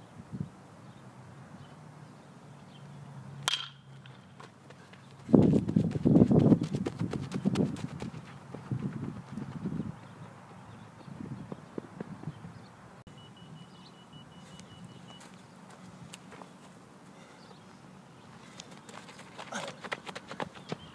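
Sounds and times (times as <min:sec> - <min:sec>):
metal bat hitting ball: 0:03.4 - 0:04.2.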